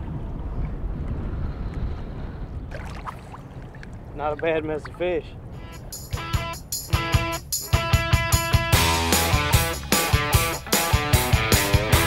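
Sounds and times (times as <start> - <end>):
wind buffeting microphone: 0.0 - 6.0.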